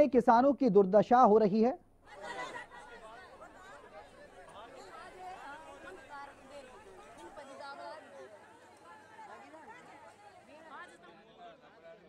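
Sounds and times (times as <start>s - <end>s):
crowd talking and calling out: 2.0s - 12.0s.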